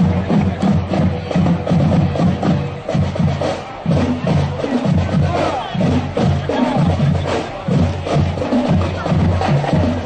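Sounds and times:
crowd noise: 0:00.0 - 0:10.0
marching band playing: 0:00.0 - 0:10.0.

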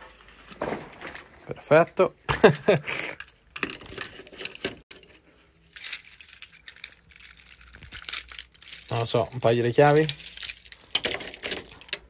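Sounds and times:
metal keys jangling: 0:05.7 - 0:12.0.

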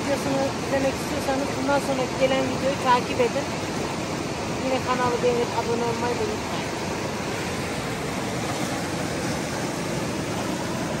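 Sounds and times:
river rushing over boulders: 0:00.0 - 0:11.0.

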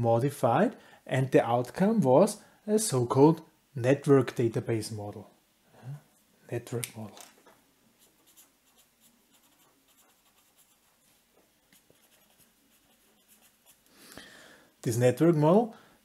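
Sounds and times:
felt-tip pen scratching on paper: 0:08.0 - 0:11.0, 0:11.6 - 0:13.8
hand brushing across paper: 0:08.0 - 0:13.9.

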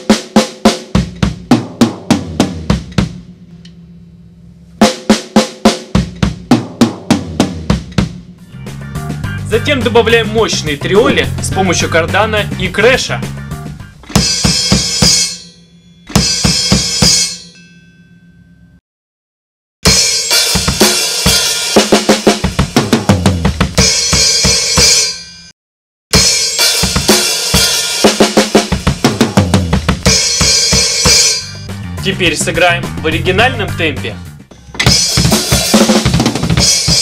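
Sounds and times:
drum kit playing: 0:00.0 - 0:03.5, 0:04.8 - 0:17.4, 0:19.8 - 0:25.3, 0:26.1 - 0:37.0
crash cymbal ringing: 0:14.2 - 0:18.4, 0:30.1 - 0:31.7.

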